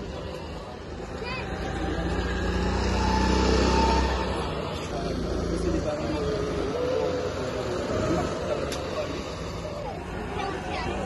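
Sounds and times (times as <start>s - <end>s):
go-kart engines passing: 0.0s - 11.0s
people talking: 0.0s - 11.0s.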